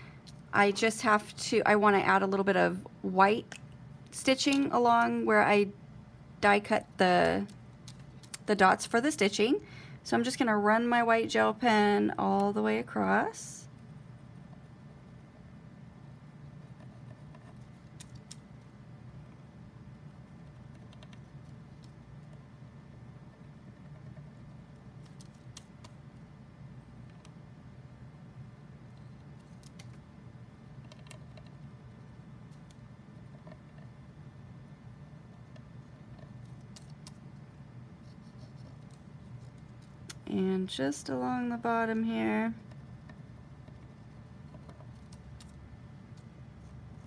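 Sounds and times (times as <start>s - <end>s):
low steady hum: 0.0s - 47.0s
pen scratching on paper: 16.4s - 18.1s.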